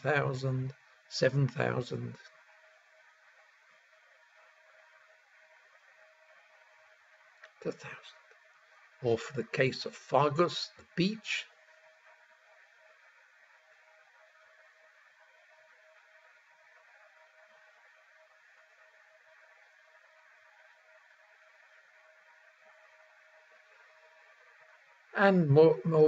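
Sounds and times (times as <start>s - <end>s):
faint steady hiss: 0.0s - 26.0s
thin steady tone: 0.0s - 26.0s.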